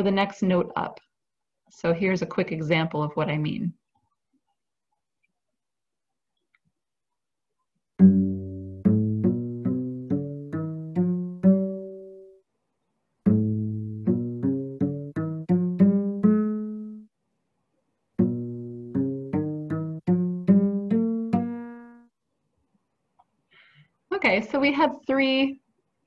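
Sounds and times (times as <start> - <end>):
cello plucked pizzicato scales: 8.0 - 12.4, 13.2 - 17.1, 18.2 - 22.1.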